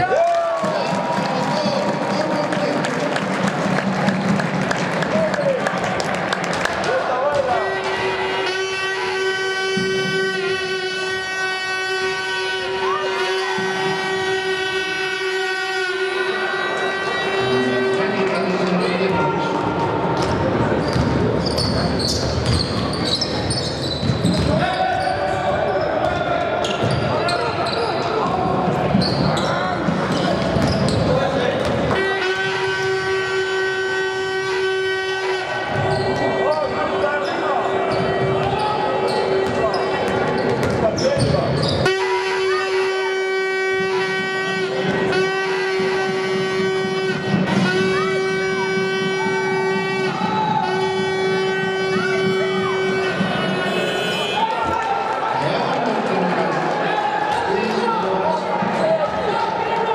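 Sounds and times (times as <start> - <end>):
crowd noise: 0.0 - 59.9
long steady horn: 7.4 - 19.1, 31.9 - 38.4, 41.8 - 54.6
basketball bouncing: 20.1 - 24.7, 28.2 - 32.4, 39.4 - 41.8
sneakers squeaking on court: 20.2 - 32.0, 35.7 - 41.9.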